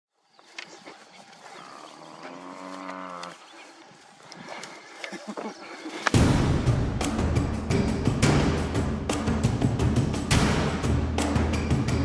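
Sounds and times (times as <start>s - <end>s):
buffalo bellowing: 1.5s - 3.4s.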